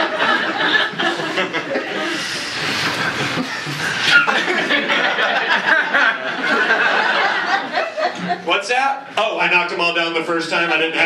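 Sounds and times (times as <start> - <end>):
audience laughing: 0.0 - 8.6.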